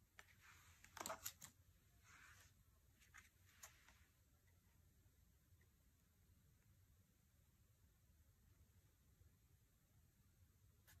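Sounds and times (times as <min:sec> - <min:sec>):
cards sliding and clicking: 0:00.2 - 0:01.6.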